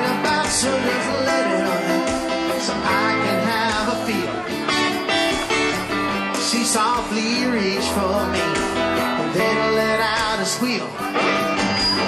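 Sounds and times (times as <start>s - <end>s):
electric lead guitar bending notes: 0.0s - 12.0s
strummed acoustic guitar: 0.0s - 12.0s.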